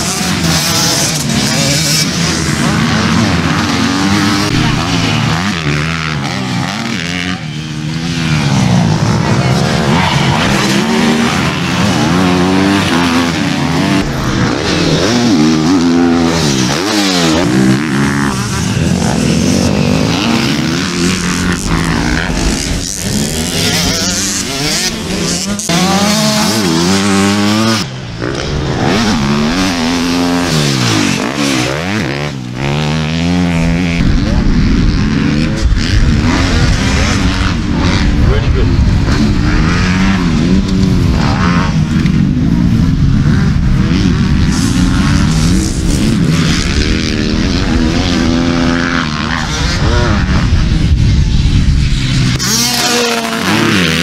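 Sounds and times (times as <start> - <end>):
motocross bikes revving: 0.0 - 54.0.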